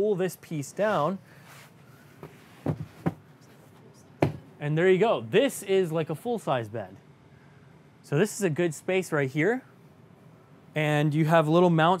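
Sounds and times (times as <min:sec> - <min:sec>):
padded panel knocks and bumps: 0:02.6 - 0:03.2, 0:04.2 - 0:04.5.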